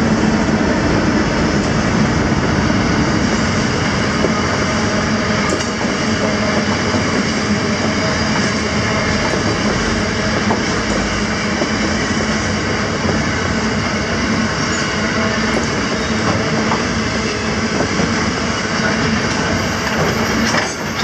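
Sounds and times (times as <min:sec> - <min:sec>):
steel wheels rumbling on rails: 0:00.0 - 0:21.0.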